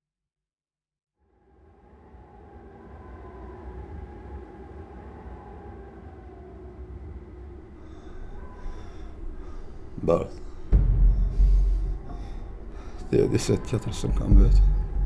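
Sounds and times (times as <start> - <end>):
droning tones: 1.3 - 15.0
low rumble: 1.4 - 15.0
sudden loud hit: 10.6 - 13.1.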